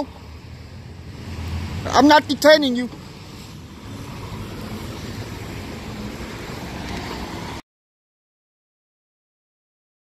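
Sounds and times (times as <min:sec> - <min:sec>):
busy street traffic: 0:00.0 - 0:07.6.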